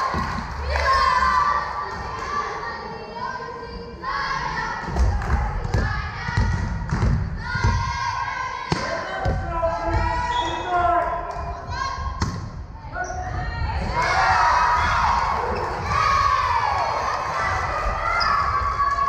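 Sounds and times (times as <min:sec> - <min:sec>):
girls calling and shouting: 0:11.3 - 0:12.2.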